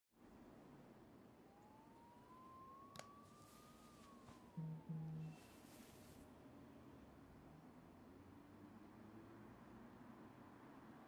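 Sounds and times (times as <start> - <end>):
faint rising and falling tone: 1.3 - 6.2
brief low hum: 3.5 - 6.2.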